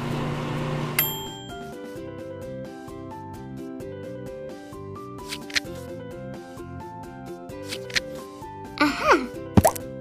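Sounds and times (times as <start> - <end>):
light background music: 1.0 - 10.0
pop with rising pitch: 9.6 - 9.8.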